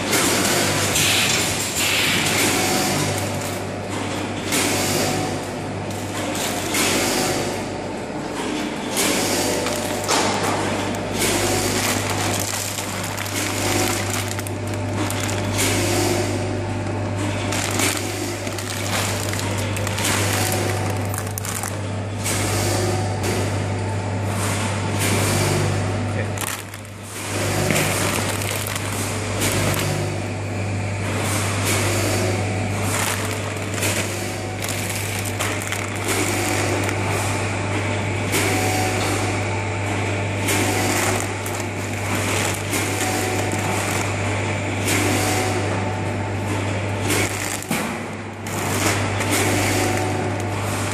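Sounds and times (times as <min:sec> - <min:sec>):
machinery humming: 0:00.0 - 0:50.9
machinery clattering and rattling: 0:08.2 - 0:22.7, 0:26.2 - 0:30.2, 0:31.0 - 0:39.1.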